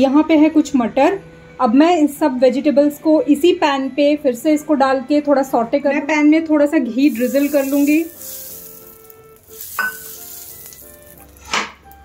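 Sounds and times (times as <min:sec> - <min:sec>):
ghee sizzling in a hot pan: 0:07.0 - 0:11.6.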